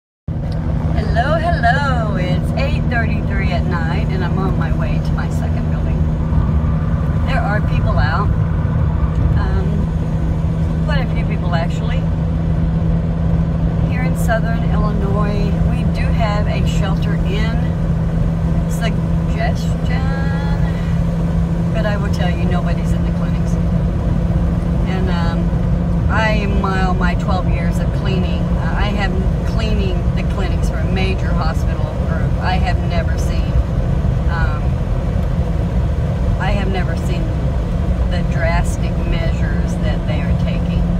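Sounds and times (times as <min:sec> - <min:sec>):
car interior road noise: 0:00.3 - 0:40.9.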